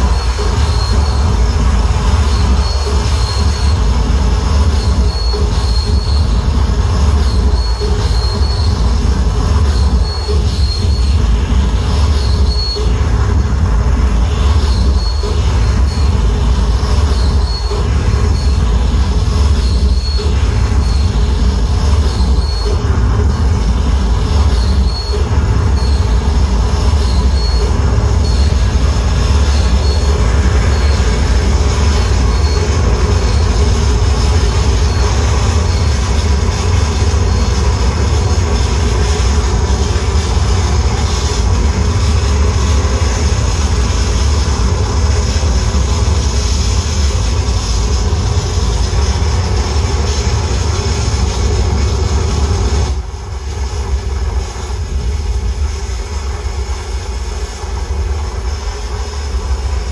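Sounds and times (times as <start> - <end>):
distorted noise with low rumble: 0.0 - 59.9
pulsing high squeal: 0.0 - 59.9.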